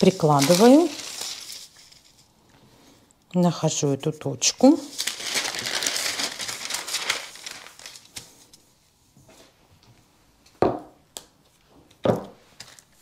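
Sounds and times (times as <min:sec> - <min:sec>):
paper sheets rustling: 0:00.0 - 0:02.3, 0:04.6 - 0:08.6.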